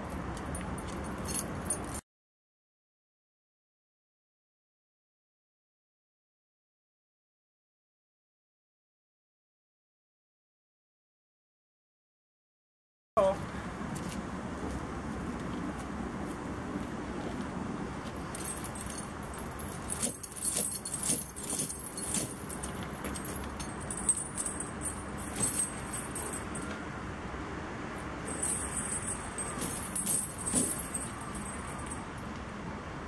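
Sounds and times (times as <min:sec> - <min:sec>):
snow chain rattling and clinking: 0:00.3 - 0:02.0, 0:18.0 - 0:26.7, 0:28.3 - 0:32.2.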